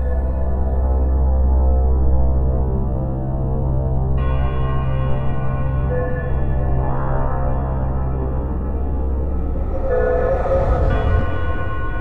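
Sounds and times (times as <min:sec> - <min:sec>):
deep sustained drone: 0:06.8 - 0:12.0
bell-like tone struck: 0:08.9 - 0:12.0
higher held tones: 0:09.0 - 0:12.0.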